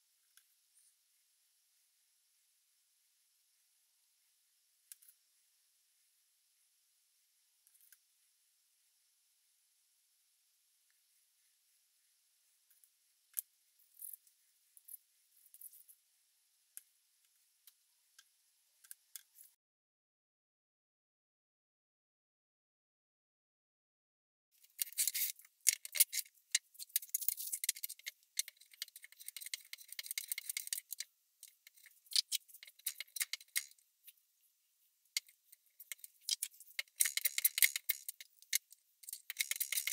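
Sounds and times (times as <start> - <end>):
wooden blocks clicking on tray: 35.2 - 39.9.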